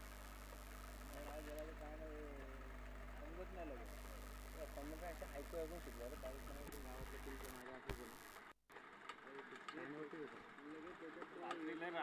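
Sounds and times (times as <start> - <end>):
steady low hum: 0.0 - 8.6.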